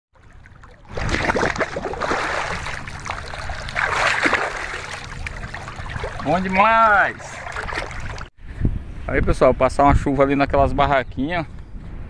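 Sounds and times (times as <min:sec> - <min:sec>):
water splashing and swirling: 0:00.2 - 0:08.3.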